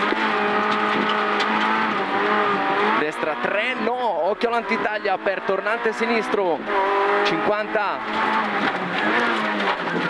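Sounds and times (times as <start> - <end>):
rally car engine running hard: 0.0 - 10.0
road and tyre noise: 0.0 - 10.0.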